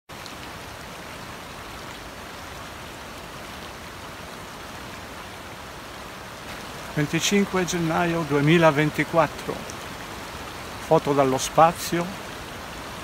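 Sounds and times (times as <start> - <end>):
stream running over stones: 0.1 - 13.0.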